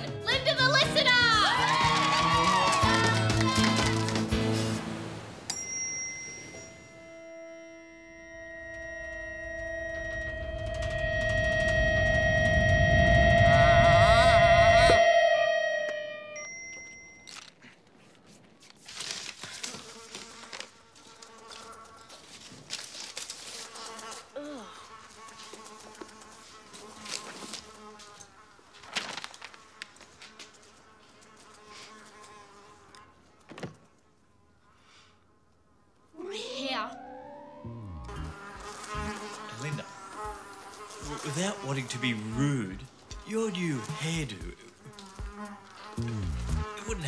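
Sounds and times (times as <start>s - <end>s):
flies buzzing: 0.0s - 5.4s, 19.3s - 47.0s.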